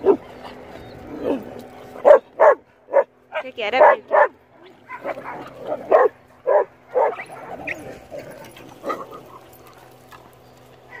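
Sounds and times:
dogs barking: 0.0s - 10.0s.

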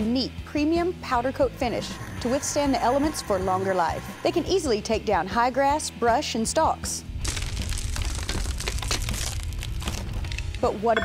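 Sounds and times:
stone cracking and crumbling: 7.1s - 11.0s.

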